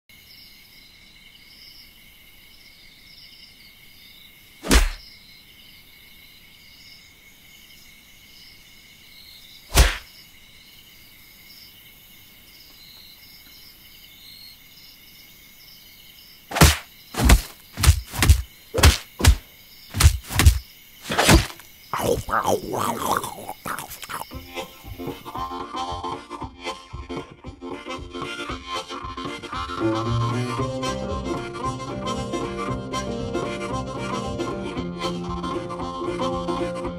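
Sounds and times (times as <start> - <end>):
insects chirping: 0.1 - 25.5
loud sharp thumps: 16.5 - 21.6.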